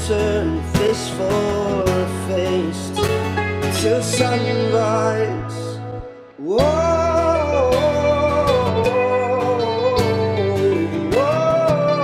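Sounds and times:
acoustic guitar: 0.0 - 12.0
man singing wavering notes: 3.8 - 12.0.

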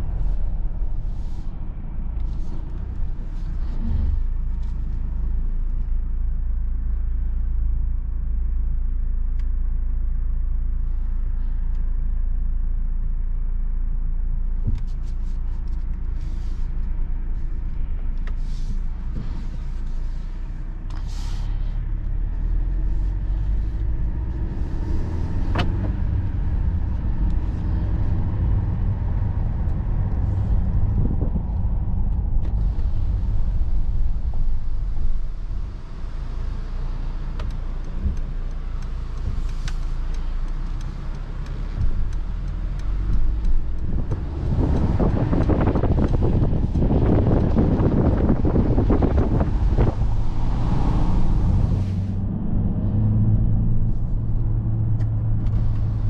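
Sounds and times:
car engine rumble in cabin: 0.0 - 56.0.

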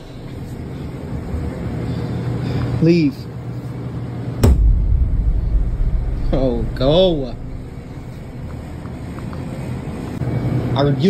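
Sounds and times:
sharp bang: 4.4 - 8.8
low rumble: 4.4 - 9.2.

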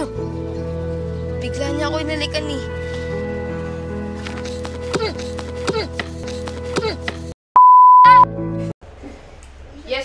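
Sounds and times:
background music: 0.0 - 7.3
steady electronic beep: 7.6 - 8.3.

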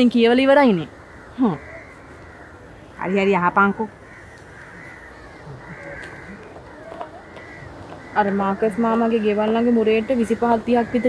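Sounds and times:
crows cawing faintly: 0.0 - 11.0.

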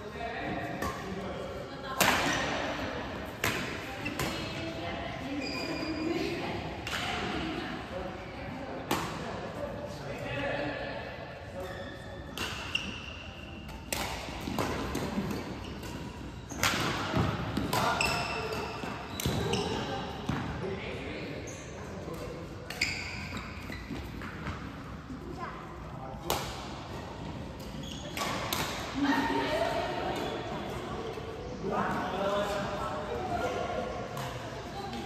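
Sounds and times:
shoes squeaking on floor: 5.3 - 6.2, 11.6 - 13.3, 15.2 - 20.0, 22.7 - 24.5, 27.6 - 28.4.

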